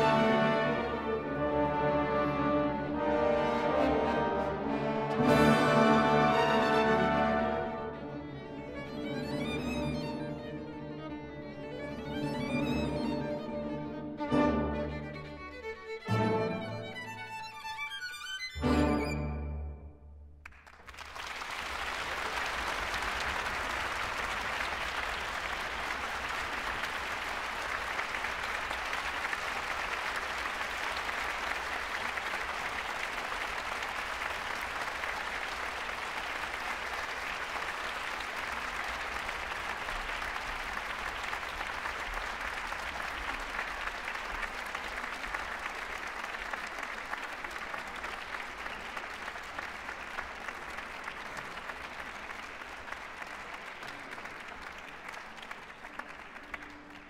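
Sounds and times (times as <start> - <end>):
audience applauding: 20.4 - 57.0.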